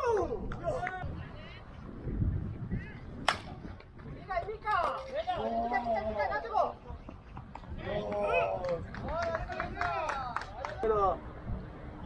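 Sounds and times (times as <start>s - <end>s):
baseball bat hitting ball: 3.3s - 3.6s.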